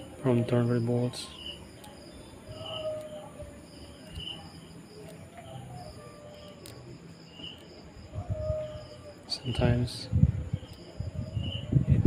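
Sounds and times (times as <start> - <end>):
crickets chirping: 0.0 - 12.0.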